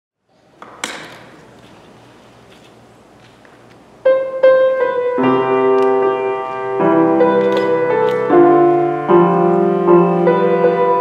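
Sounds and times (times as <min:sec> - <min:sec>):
grand piano playing: 0:04.0 - 0:11.0.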